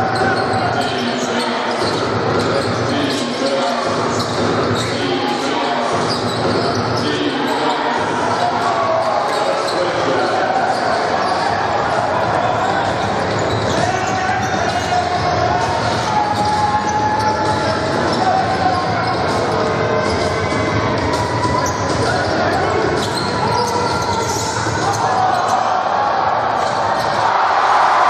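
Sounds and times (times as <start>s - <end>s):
crowd murmur and calls: 0.0s - 28.0s.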